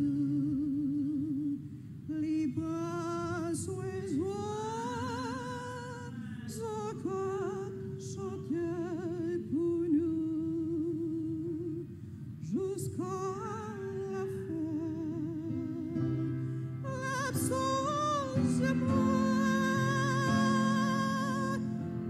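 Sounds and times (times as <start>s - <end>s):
woman singing religious song: 0.0s - 22.0s.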